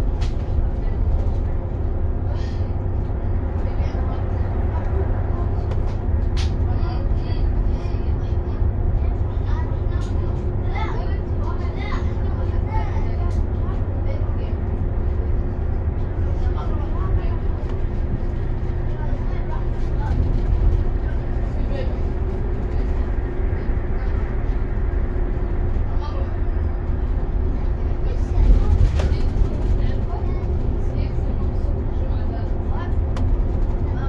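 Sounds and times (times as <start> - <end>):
bus engine and road rumble: 0.0 - 34.0.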